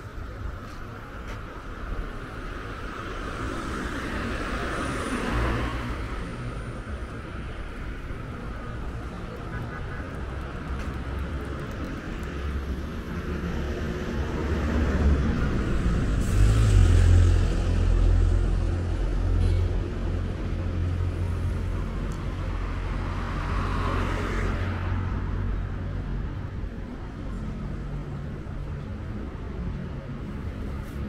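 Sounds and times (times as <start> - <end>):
low traffic rumble: 0.0 - 31.0
cars driving past: 2.2 - 31.0.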